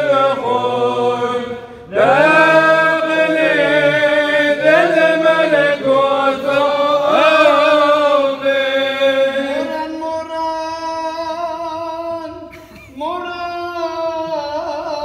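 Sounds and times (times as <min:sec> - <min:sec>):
man chanting a hymn: 0:00.0 - 0:15.0.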